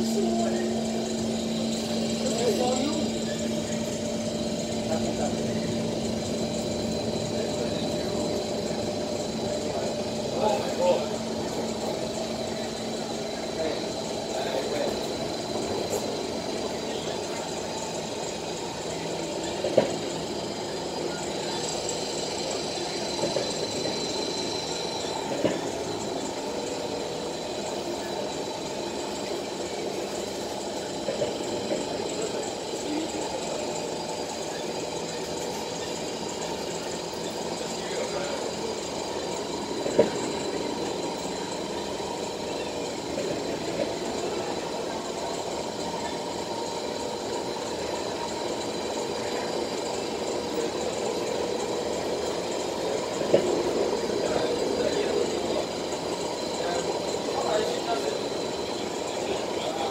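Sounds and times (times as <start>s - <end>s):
train running noise: 0.0s - 59.9s.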